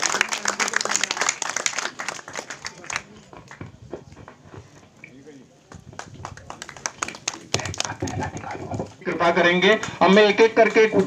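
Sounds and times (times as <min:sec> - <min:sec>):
applause: 0:00.0 - 0:03.6, 0:05.7 - 0:08.5.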